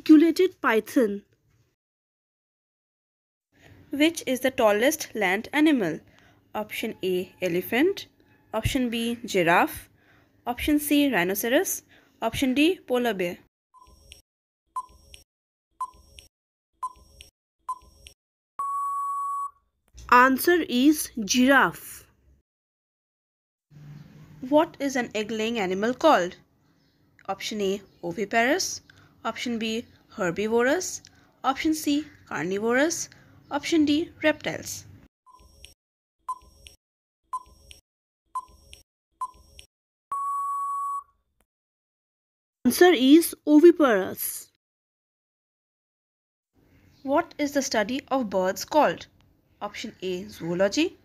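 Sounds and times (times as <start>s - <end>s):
electronic timer beep: 13.7s - 14.2s, 14.8s - 15.2s, 15.8s - 19.6s, 35.3s - 37.8s, 38.4s - 41.1s
steady electronic beep: 18.6s - 19.6s, 40.1s - 41.1s.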